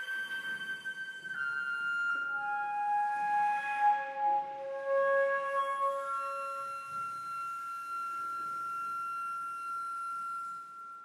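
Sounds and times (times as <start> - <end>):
flute holding high note: 0.0 - 11.0.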